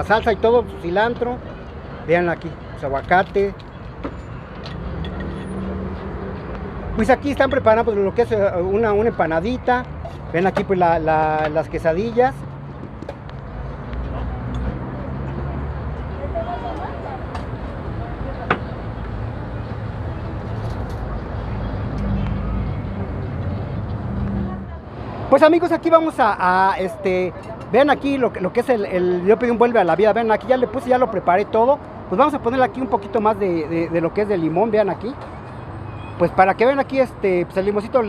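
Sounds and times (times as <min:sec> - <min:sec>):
street traffic with engine hum: 0:00.0 - 0:38.0.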